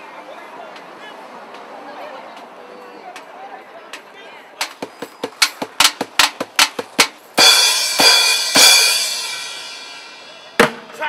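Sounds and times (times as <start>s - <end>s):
sharp drum strikes: 4.6s - 10.9s
cymbal crashes: 7.4s - 10.5s.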